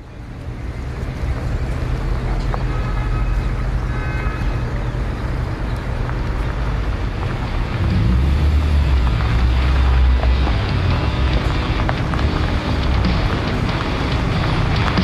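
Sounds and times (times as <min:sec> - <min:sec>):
car engine hum: 0:00.0 - 0:15.0
road noise: 0:00.0 - 0:15.0.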